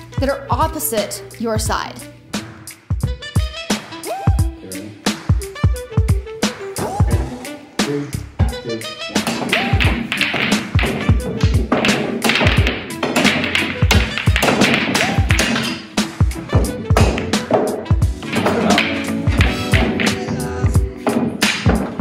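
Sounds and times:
music with driving beat: 1.4 - 22.0
pool balls clicking: 9.2 - 22.0.

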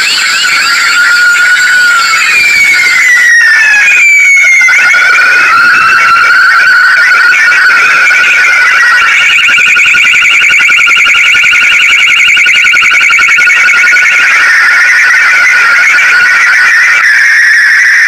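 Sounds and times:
steady high siren tone: 0.0 - 18.0
wailing and warbling siren: 0.0 - 18.0.

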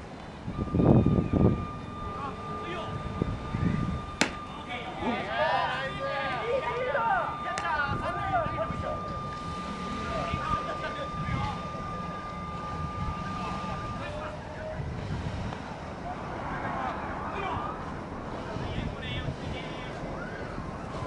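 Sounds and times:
steady high tone: 0.5 - 14.8
players calling out: 1.6 - 14.7.

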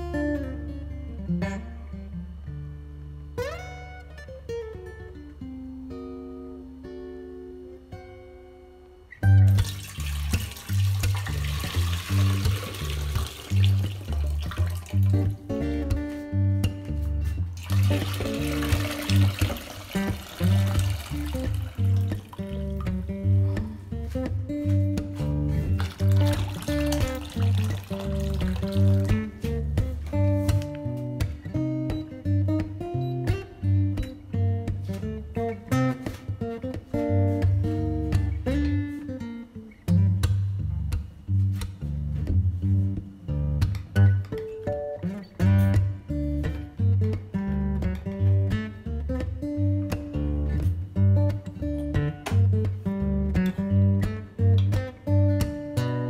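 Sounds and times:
acoustic guitar music: 0.0 - 56.0
water pouring into a pot: 9.5 - 15.3, 17.6 - 23.0, 25.7 - 29.4.

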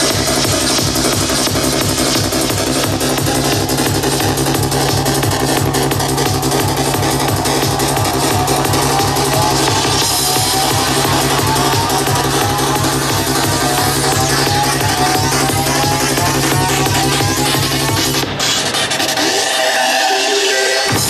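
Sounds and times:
psytrance music: 0.0 - 21.0.

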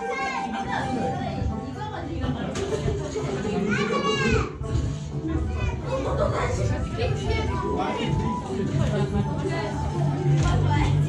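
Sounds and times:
background music: 0.0 - 11.0
party chatter: 0.0 - 11.0.

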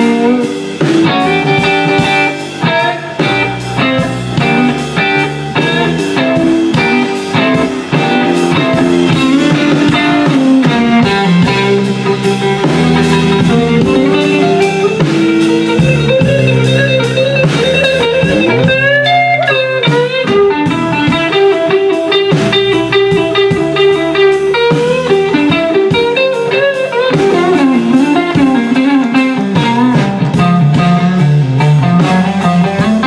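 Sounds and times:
bass guitar: 0.0 - 33.0
electric blues guitar solo: 0.0 - 33.0
steady drum beat: 0.0 - 33.0.

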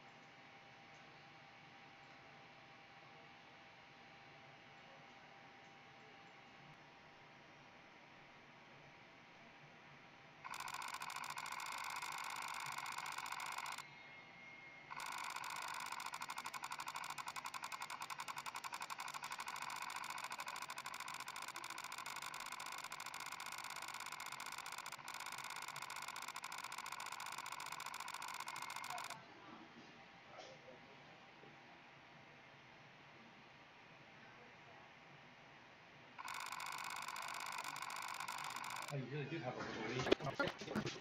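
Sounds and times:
electronic scanner tone: 10.5 - 29.2, 36.2 - 38.9.

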